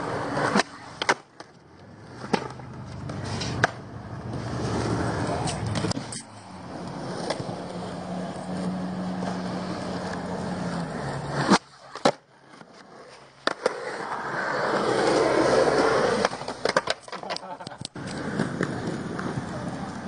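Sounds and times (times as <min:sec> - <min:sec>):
skateboard wheels rolling on concrete: 0:00.0 - 0:20.0
skateboard sharp clack: 0:00.2 - 0:01.6, 0:02.2 - 0:03.9, 0:11.4 - 0:12.2, 0:16.2 - 0:19.9.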